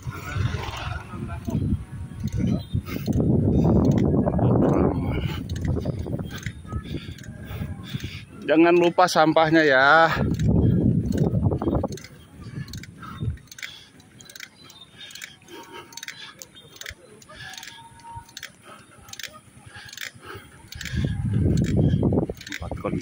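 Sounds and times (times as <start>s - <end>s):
faint voices: 0.0s - 23.0s.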